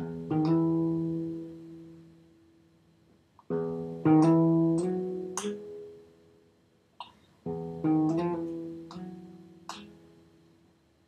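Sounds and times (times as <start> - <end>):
classical guitar chord ringing: 0.0 - 2.2, 3.5 - 6.2, 7.5 - 10.3.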